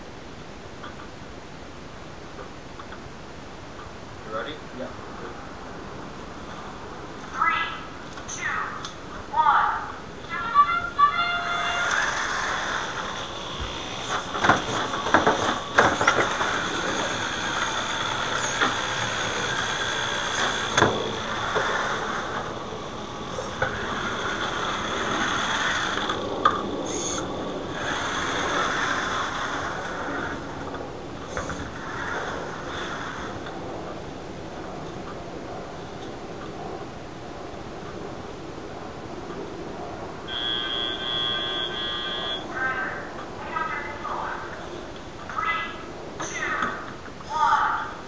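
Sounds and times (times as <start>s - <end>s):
robot motors whining: 11.3s - 33.5s
rattling drivetrain: 11.6s - 34.0s
electronic buzzer tone: 40.3s - 42.5s.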